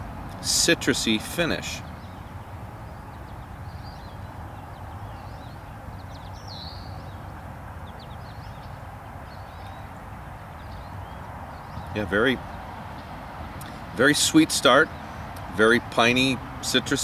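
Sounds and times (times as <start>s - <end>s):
songbird chirps: 0.0s - 17.0s.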